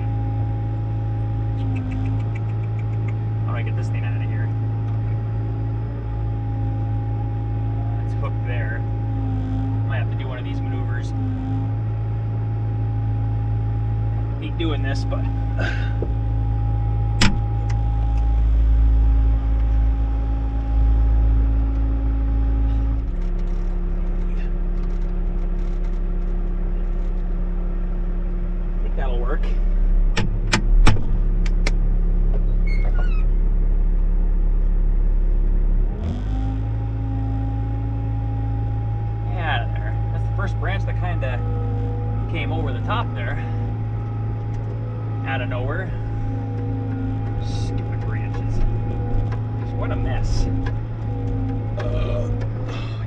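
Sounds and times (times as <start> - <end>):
diesel engine under load: 0.0 - 53.0.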